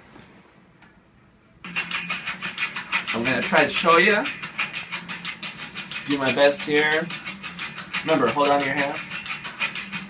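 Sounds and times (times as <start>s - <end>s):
song from laptop speakers: 1.7s - 10.0s.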